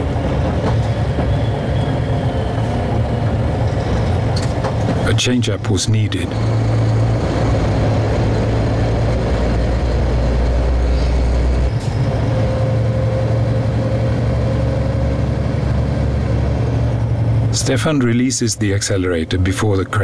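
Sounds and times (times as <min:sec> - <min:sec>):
road noise: 0:00.0 - 0:20.0
truck diesel engine running: 0:00.0 - 0:20.0.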